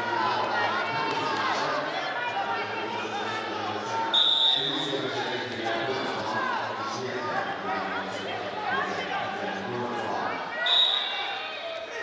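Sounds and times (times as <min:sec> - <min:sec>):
voices calling out in a hall: 0:00.0 - 0:12.0
referee's whistle blast: 0:04.1 - 0:04.9, 0:10.6 - 0:11.3.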